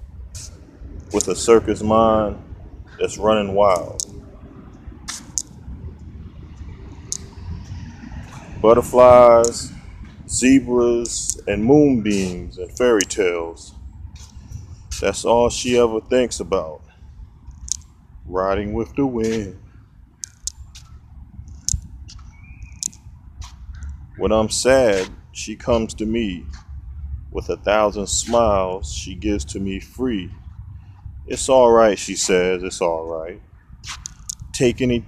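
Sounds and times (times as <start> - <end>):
road traffic rumble: 0.0 - 35.0
short hissing sounds: 0.3 - 0.6
small bird chirping: 21.6 - 23.1.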